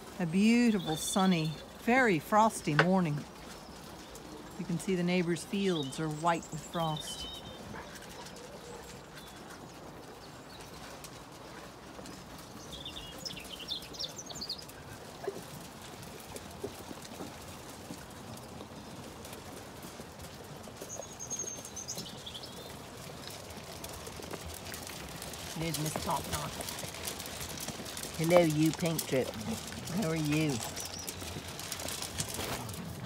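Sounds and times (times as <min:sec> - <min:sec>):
sheep crunching feed: 0:00.0 - 0:33.0.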